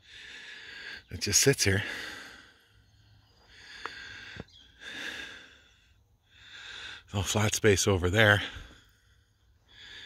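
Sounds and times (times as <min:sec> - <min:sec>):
person breathing: 0:00.0 - 0:01.1, 0:01.8 - 0:07.1, 0:08.4 - 0:10.0.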